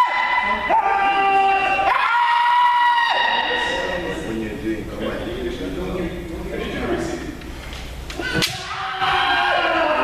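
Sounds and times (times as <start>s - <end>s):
loud shout: 0.0s - 3.9s, 8.2s - 10.0s
hall full of voices: 0.0s - 10.0s.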